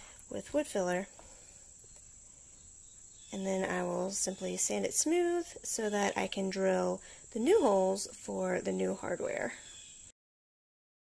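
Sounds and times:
faint hiss: 0.0 - 10.1.

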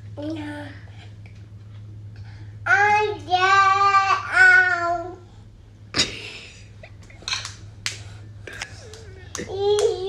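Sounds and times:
sharp hand claps: 7.4 - 8.1, 8.8 - 10.0.

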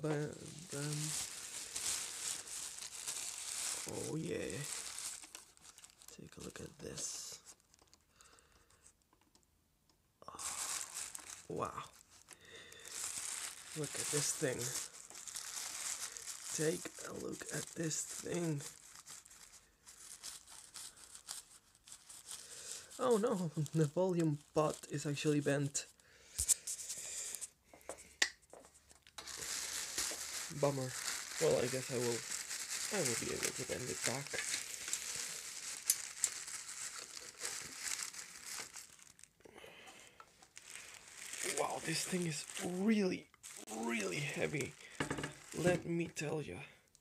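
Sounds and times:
plastic bag crinkling: 0.0 - 8.5, 10.3 - 27.4, 28.7 - 46.3.

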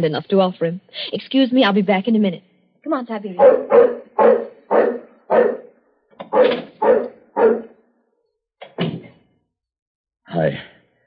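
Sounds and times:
dog barking: 3.4 - 7.8.

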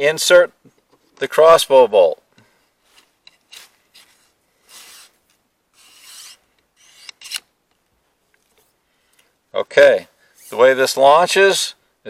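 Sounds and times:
crossbow bolt scraping tube: 3.2 - 7.5, 10.4 - 10.8
crossbow bolt clicking: 5.9 - 7.5.

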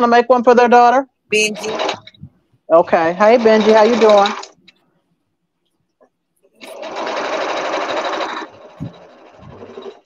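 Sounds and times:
sewing machine stitching: 1.5 - 2.2, 2.9 - 4.6, 6.6 - 10.0.

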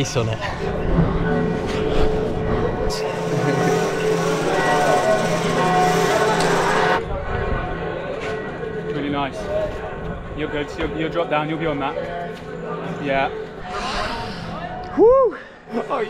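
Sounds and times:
church bells ringing: 0.5 - 11.8.

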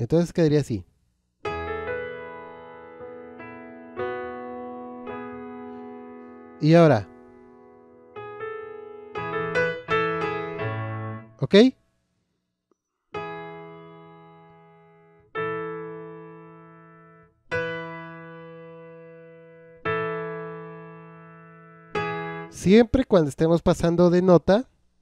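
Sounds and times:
piano notes: 1.4 - 11.6, 13.1 - 23.0
sustained piano chords: 1.4 - 11.7, 13.2 - 23.0.

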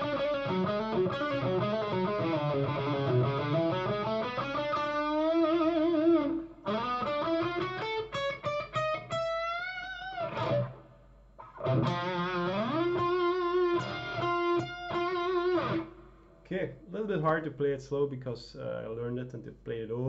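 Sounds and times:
electric guitar solo with string bends: 0.0 - 16.1.

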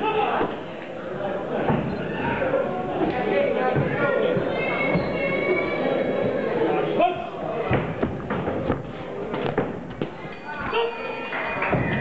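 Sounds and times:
voices in a large hall: 0.0 - 12.0.

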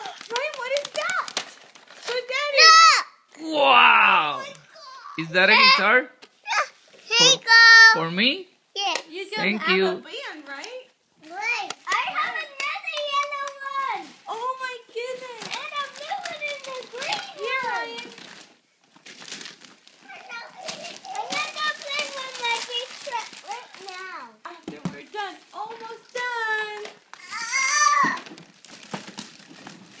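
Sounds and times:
young children talking and calling: 0.0 - 8.0, 8.7 - 18.2, 20.0 - 28.4.

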